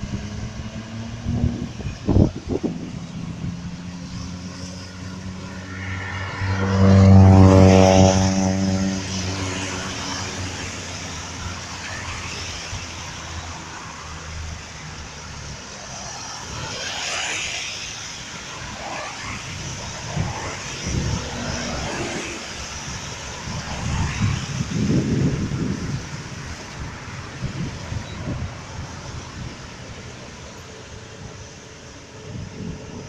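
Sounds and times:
engine drone: 0:00.0 - 0:33.0
road and tyre noise: 0:00.0 - 0:33.0.

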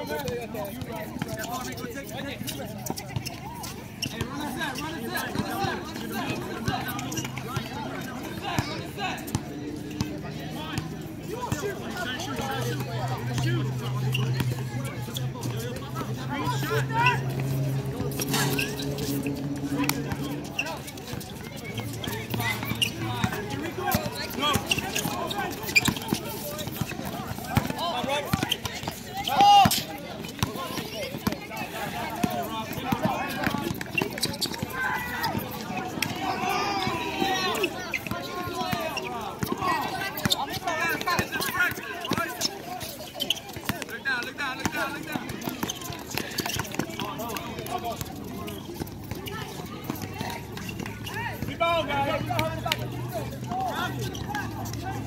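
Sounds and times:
footsteps on outdoor court: 0:00.0 - 0:55.0
players calling out: 0:00.0 - 0:55.0.

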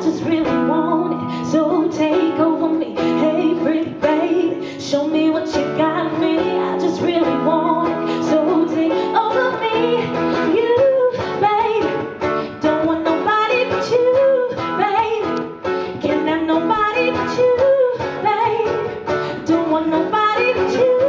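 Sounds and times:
strummed acoustic guitar: 0:00.0 - 0:21.0
woman singing into a microphone: 0:00.0 - 0:21.0.

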